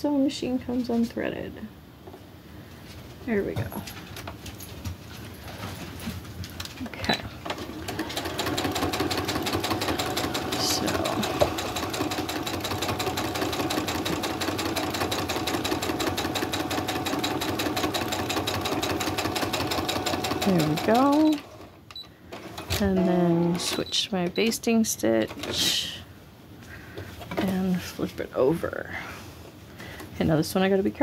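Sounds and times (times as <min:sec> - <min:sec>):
sewing machine stitching: 0:07.4 - 0:21.7, 0:25.2 - 0:25.8.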